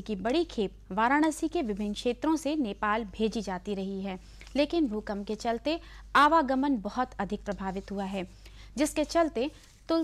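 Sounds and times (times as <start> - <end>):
woman narrating news: 0.0 - 10.0.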